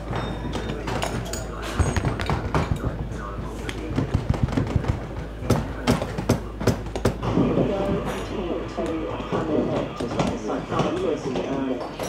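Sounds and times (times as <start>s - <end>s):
hammer pounding shoe: 1.8s - 3.2s.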